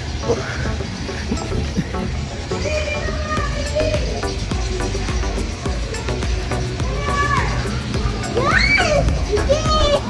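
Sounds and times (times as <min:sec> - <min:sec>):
background music with steady beat: 0:00.0 - 0:10.0
children playing: 0:00.0 - 0:10.0
child calling out: 0:02.6 - 0:04.2, 0:06.8 - 0:10.0.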